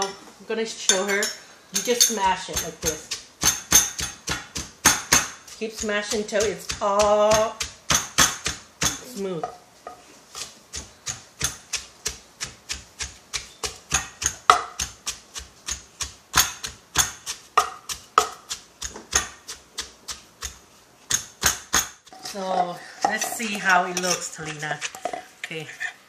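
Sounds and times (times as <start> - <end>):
pestle pounding in a mortar: 1.8 - 25.2.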